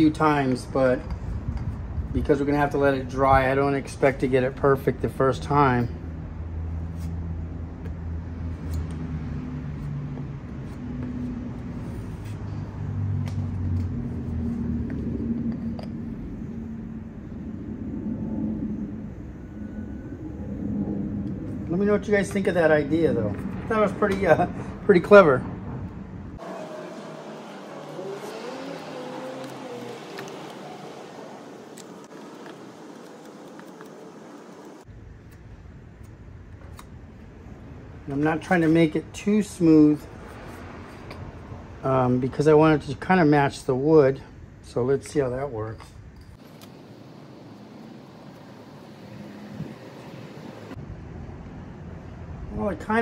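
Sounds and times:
road traffic noise: 0.0 - 53.0
car passing by: 6.0 - 34.9, 38.0 - 42.2, 47.6 - 50.8.

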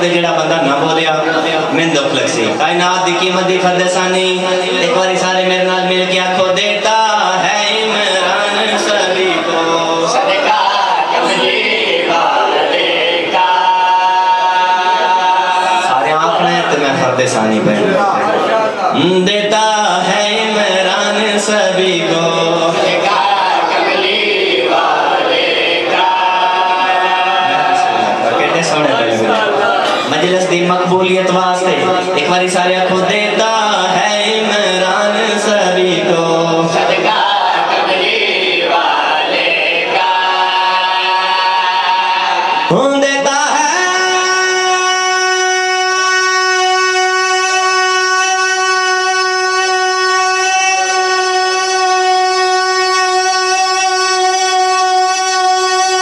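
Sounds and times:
man chanting: 0.0 - 10.4, 15.6 - 23.2, 27.4 - 37.1, 42.7 - 56.0
men singing a held note: 31.6 - 56.0.

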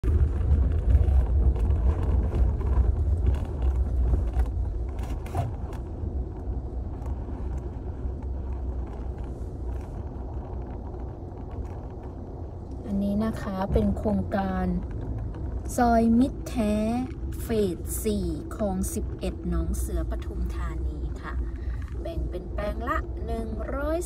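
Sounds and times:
tyre and engine rumble: 0.0 - 24.0.

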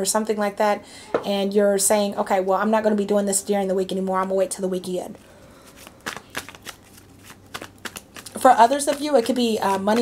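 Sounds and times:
cards being shuffled: 5.6 - 10.0.

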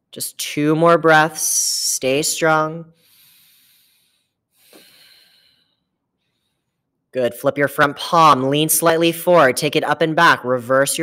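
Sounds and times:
breathing through the nose: 3.0 - 6.7.

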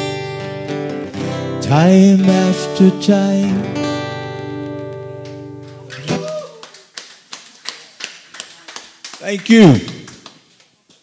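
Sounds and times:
acoustic guitar chord ringing: 0.0 - 5.8
audience clapping: 5.2 - 11.0.

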